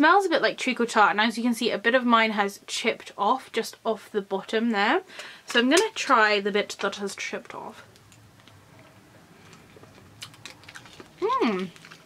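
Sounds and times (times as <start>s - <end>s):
hard candy crunched in teeth: 9.5s - 12.0s.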